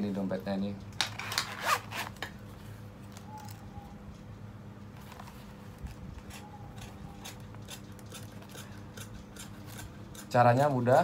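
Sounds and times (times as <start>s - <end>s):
metal zipper unzipping: 1.2s - 2.2s.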